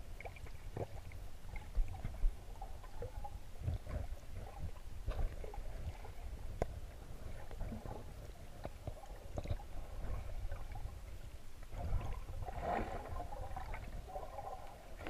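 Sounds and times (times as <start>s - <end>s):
underwater rumble of moving water: 0.0s - 15.0s.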